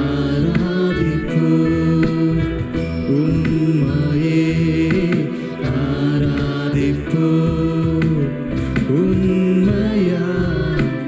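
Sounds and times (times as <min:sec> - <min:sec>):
man singing worship song: 0:00.0 - 0:11.0.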